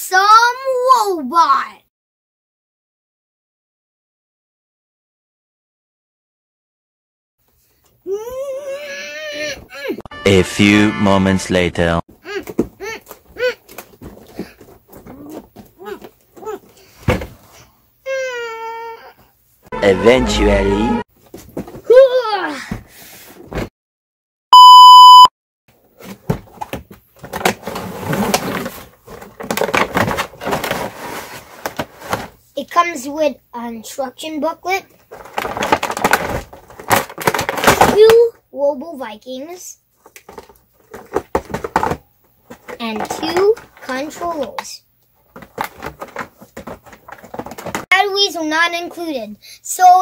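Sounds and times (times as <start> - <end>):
test-tone beep: 24.5 - 25.3
cardboard packaging rustling: 26.0 - 32.4, 35.1 - 37.8, 45.3 - 47.9
packaging rustling: 35.1 - 37.8, 45.3 - 47.9.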